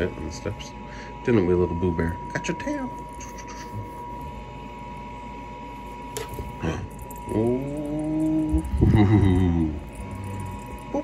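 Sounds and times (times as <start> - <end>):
steady high hum: 0.0 - 11.0
person humming low: 6.6 - 11.0.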